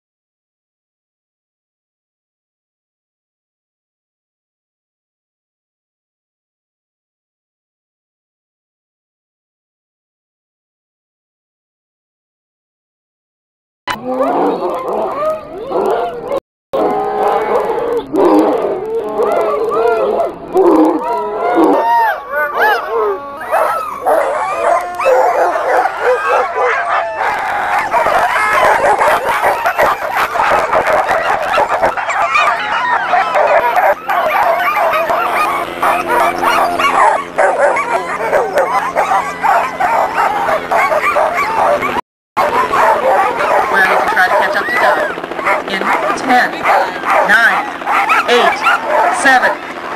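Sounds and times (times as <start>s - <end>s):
dogs barking and howling: 13.9s - 49.9s.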